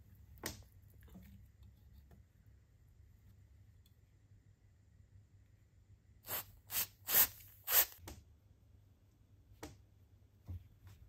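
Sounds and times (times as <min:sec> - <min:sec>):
aerosol spray hissing: 0:06.2 - 0:08.0.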